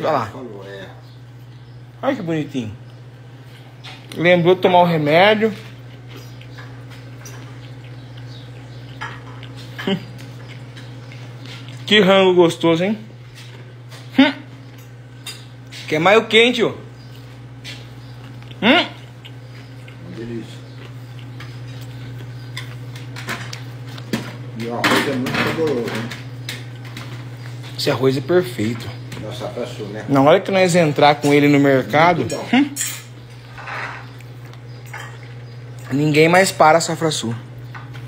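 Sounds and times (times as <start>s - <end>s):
steady low hum: 0.0s - 38.0s
dishes and cutlery clicking: 8.9s - 9.9s
cutlery clinking on a plate: 32.3s - 34.2s.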